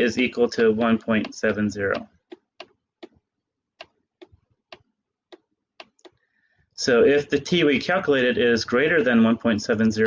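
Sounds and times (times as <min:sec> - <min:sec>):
pen clicks on screen: 0:03.8 - 0:06.2.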